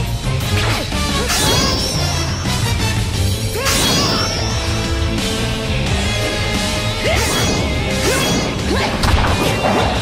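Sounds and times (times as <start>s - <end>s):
loud driving music: 0.0s - 10.0s.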